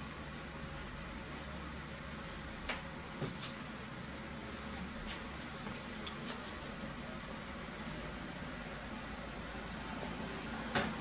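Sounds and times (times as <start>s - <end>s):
computer cooling fans humming: 0.0s - 11.0s.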